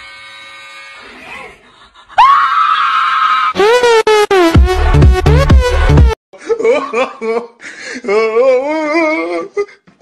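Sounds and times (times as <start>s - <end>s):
person screaming: 2.2s - 3.6s.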